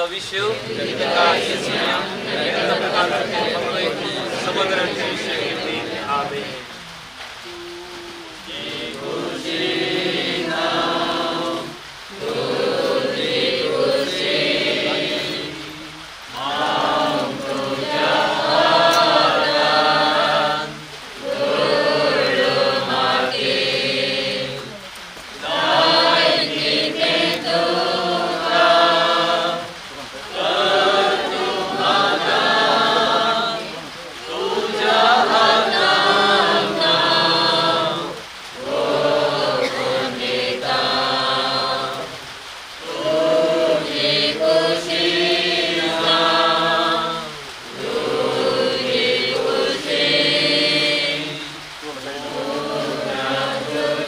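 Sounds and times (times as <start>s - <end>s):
people singing a hymn unaccompanied: 0.0s - 54.0s.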